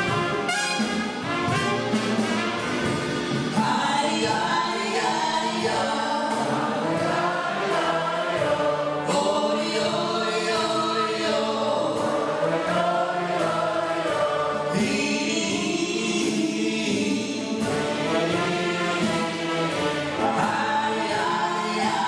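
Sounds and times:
wind band playing: 0.0s - 10.2s, 10.8s - 14.8s, 17.6s - 22.0s
steady drum beat: 0.0s - 22.0s
man and woman singing: 3.5s - 22.0s.

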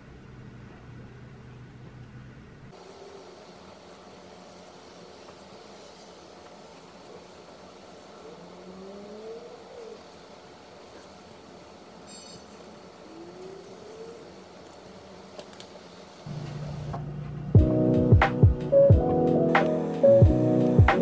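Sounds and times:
faint distant traffic: 0.0s - 21.0s.

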